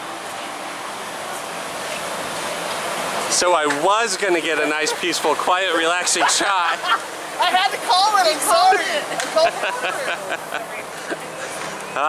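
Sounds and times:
man laughing: 4.6s - 7.1s, 8.6s - 11.2s.

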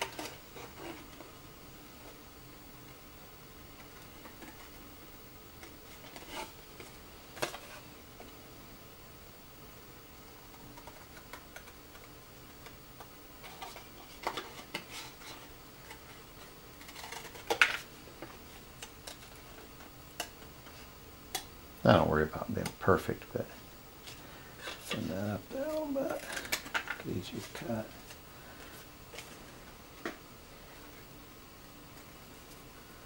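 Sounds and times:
scissors cutting paper: 16.8s - 17.6s.

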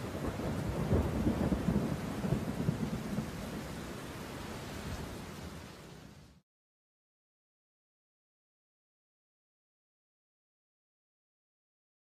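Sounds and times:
thunder rumbling: 0.0s - 3.8s
rain hiss: 0.0s - 6.4s.

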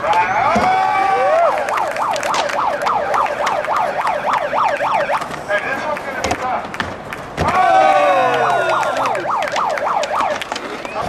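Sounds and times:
skateboard wheels clacking: 0.0s - 11.0s
electronic siren yelping: 1.2s - 5.3s, 8.4s - 11.0s.

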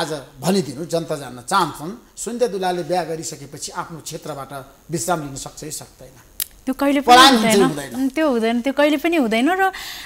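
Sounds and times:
man talking: 7.1s - 8.0s.

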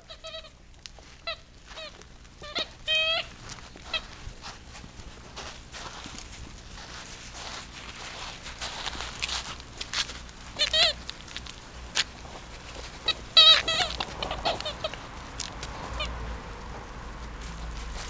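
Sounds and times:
puppies yelping and squealing: 0.0s - 0.6s, 1.2s - 4.2s, 10.4s - 11.1s, 12.2s - 15.1s
scuffling noise: 0.1s - 15.0s, 17.2s - 18.0s.

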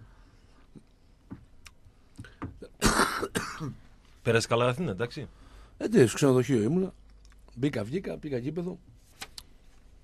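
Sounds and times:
person clearing throat: 2.6s - 3.8s.

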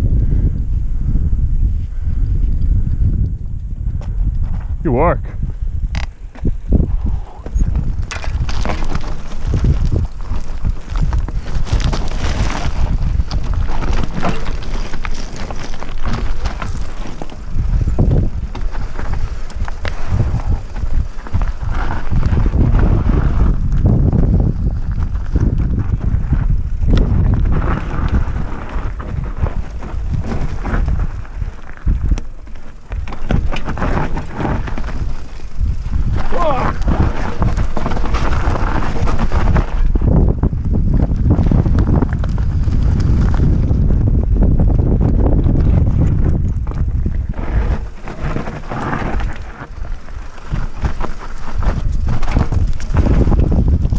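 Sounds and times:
wind buffeting microphone: 0.0s - 53.9s
bike knocks and rattles: 5.9s - 53.9s
tyres crunching over gravel: 7.2s - 53.9s.

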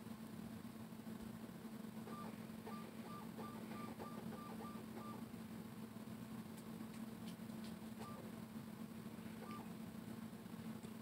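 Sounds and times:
low electrical hum: 0.0s - 11.0s
short electronic beeps: 2.1s - 5.2s.

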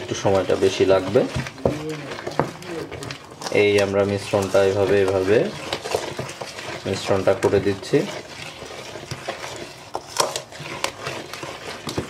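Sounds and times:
spoon stirring thick paste: 0.0s - 12.0s.

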